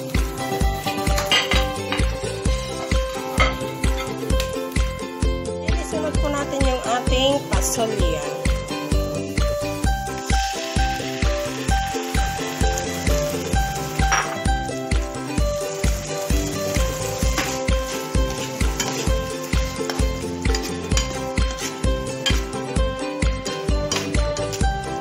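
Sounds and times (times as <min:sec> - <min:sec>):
background music with steady beat: 0:00.0 - 0:25.0
food sizzling in oil: 0:00.0 - 0:25.0.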